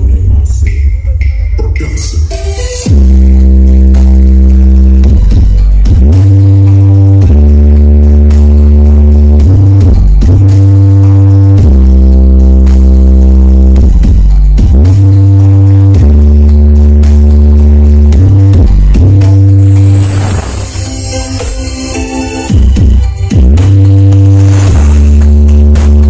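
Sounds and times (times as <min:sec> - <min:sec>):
loud bass-heavy music: 0:00.0 - 0:26.0.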